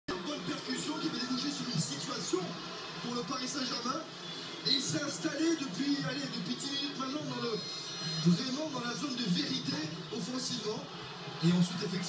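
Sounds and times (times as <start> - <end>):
commentator speaking: 0.1 - 12.0
stadium crowd noise: 0.1 - 12.0.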